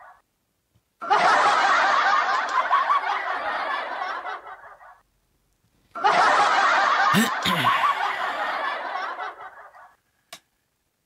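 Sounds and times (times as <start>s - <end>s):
several people laughing: 1.0s - 5.0s, 6.0s - 10.0s.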